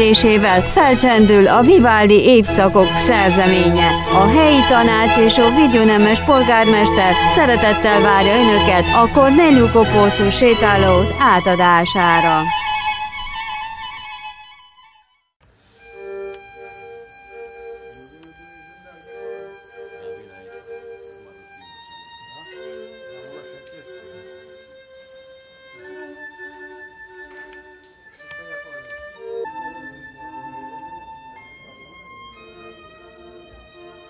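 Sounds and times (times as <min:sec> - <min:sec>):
chamber string orchestra: 0:00.0 - 0:14.0, 0:15.8 - 0:24.6, 0:25.7 - 0:34.0.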